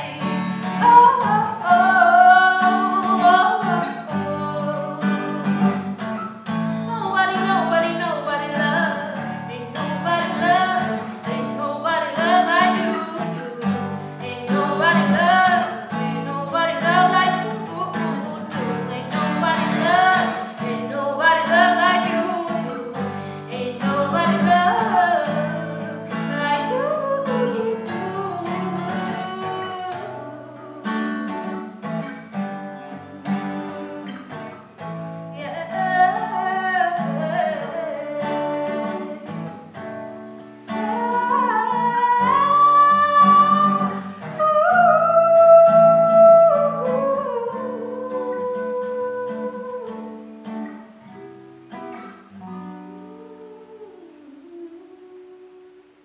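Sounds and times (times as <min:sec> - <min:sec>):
woman singing pop melody: 0:00.0 - 0:32.1, 0:35.3 - 0:50.3
acoustic guitar strumming: 0:00.0 - 0:56.0.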